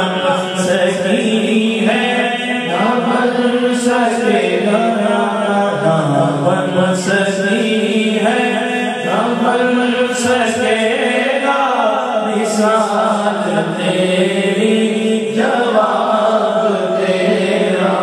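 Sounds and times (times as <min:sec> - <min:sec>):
man singing devotional song: 0:00.0 - 0:18.0.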